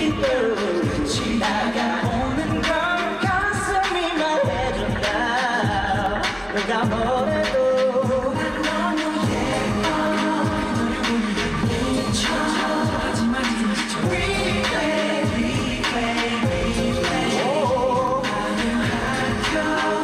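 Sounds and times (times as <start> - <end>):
male vocal group singing: 0.0 - 20.0
upbeat pop backing track: 0.0 - 20.0.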